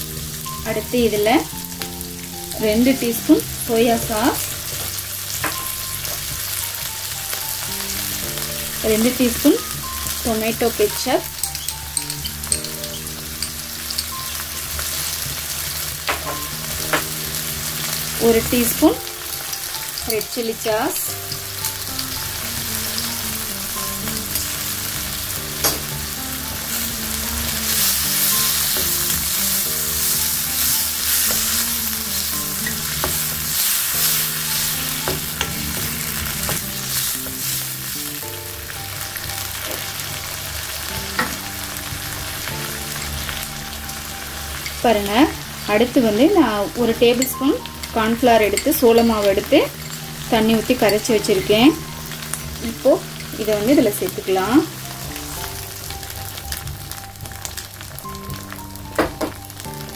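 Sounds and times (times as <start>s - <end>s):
vegetables sizzling in a wok: 0.0s - 59.9s.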